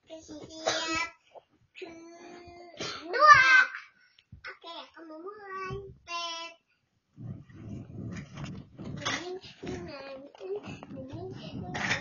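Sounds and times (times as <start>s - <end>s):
girl's voice: 0.0s - 1.2s, 1.8s - 3.9s, 4.5s - 6.7s, 8.8s - 12.0s
muffled movement noise: 7.2s - 12.0s.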